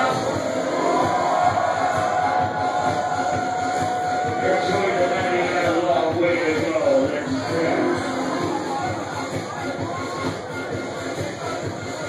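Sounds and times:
steady pounding beat: 0:00.0 - 0:12.0.

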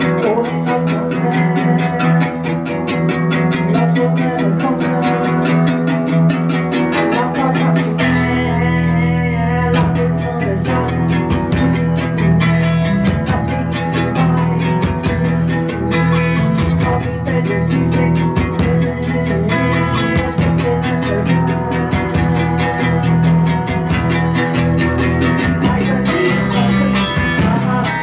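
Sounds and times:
bass guitar: 0:00.0 - 0:28.0
electric guitars: 0:00.0 - 0:28.0
drum kit beat: 0:09.7 - 0:28.0.

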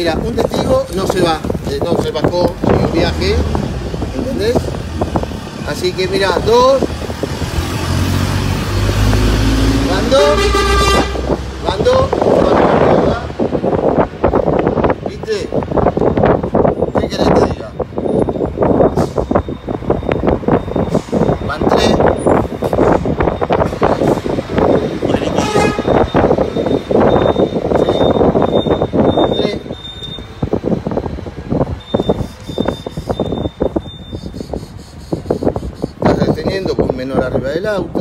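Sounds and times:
road traffic passing: 0:00.0 - 0:38.0
wind rumbling on microphone: 0:00.0 - 0:38.0.

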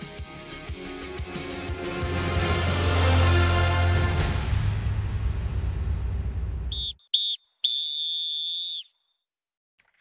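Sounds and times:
music: 0:00.0 - 0:06.7
referee's whistle blasts: 0:06.7 - 0:08.9.

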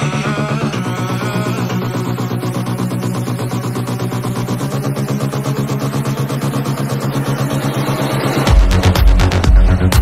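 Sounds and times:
pulsing buzzy synth chords: 0:00.0 - 0:10.0.

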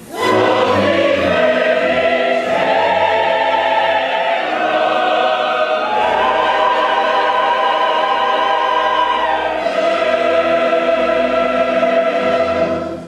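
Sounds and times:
opera chorus singing with orchestra: 0:00.0 - 0:13.0.

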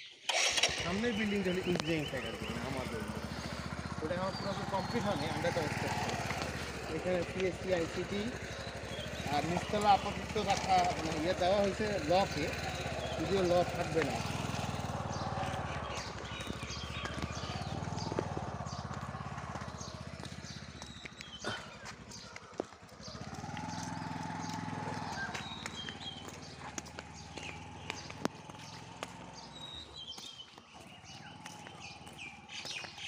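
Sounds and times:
indistinct voices: 0:00.5 - 0:20.3.

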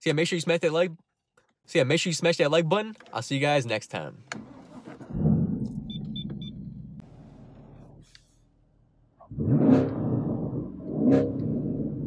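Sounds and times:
car engine rumbling: 0:04.2 - 0:12.0
car engine revving: 0:09.3 - 0:12.0.

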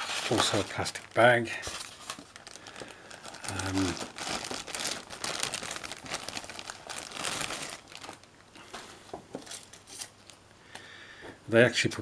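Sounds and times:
plastic bag crinkling: 0:00.0 - 0:10.4.

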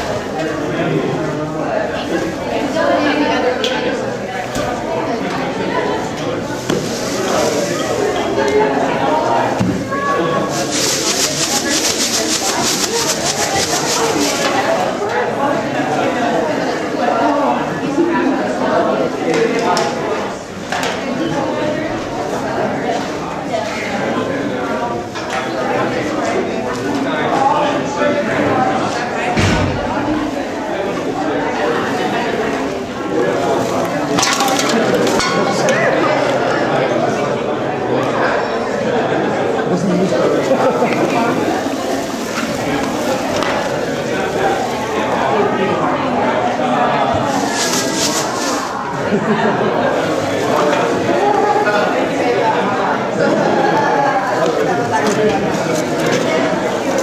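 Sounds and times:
crowd murmur: 0:00.0 - 0:57.0
plastic crinkling and rustling: 0:06.5 - 0:08.2, 0:40.5 - 0:45.2, 0:47.3 - 0:48.7, 0:54.8 - 0:57.0
plastic bags and cans rattling: 0:06.5 - 0:08.3, 0:10.5 - 0:14.9, 0:33.3 - 0:35.7, 0:40.4 - 0:45.2, 0:47.2 - 0:48.8, 0:54.7 - 0:57.0.

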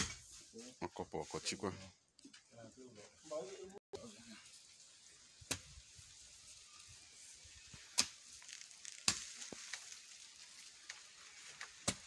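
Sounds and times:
soil crackling and trickling: 0:04.0 - 0:12.0
hoe striking soil: 0:11.6 - 0:12.0.

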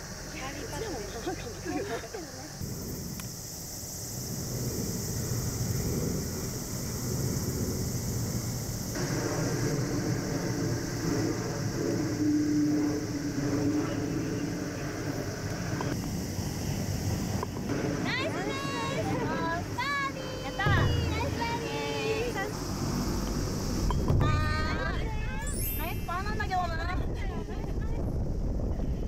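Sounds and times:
constant high hiss: 0:00.0 - 0:29.0
distant engine hum: 0:00.0 - 0:29.0
low rumble: 0:02.6 - 0:16.0, 0:19.6 - 0:29.0.

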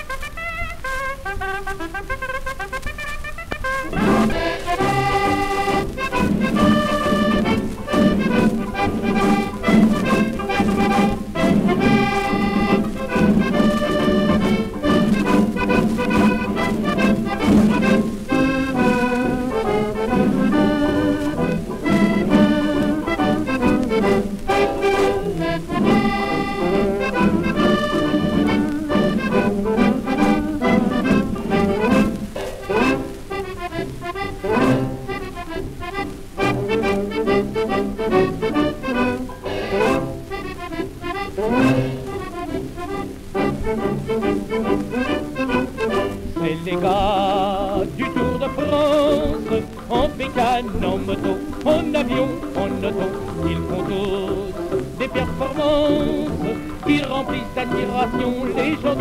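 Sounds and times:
accordion-led dance orchestra: 0:00.0 - 0:59.0
record surface scratch: 0:00.0 - 0:59.0.

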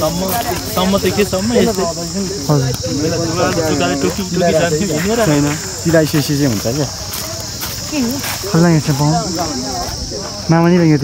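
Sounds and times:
high-pitched insect drone: 0:00.0 - 0:11.0
people talking: 0:00.0 - 0:11.0.

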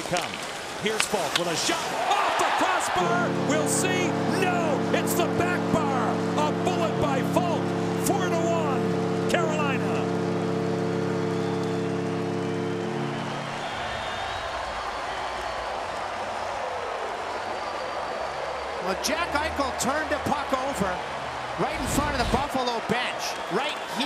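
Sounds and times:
crowd cheering: 0:00.8 - 0:24.0
goal horn blast: 0:01.8 - 0:15.4, 0:18.4 - 0:22.6.

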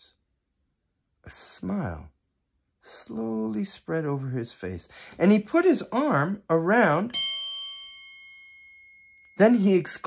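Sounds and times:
metal percussion ringing: 0:07.1 - 0:10.0.

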